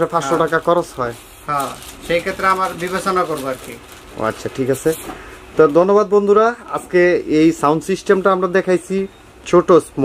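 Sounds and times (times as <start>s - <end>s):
man speaking: 0.0s - 5.0s, 5.6s - 10.0s.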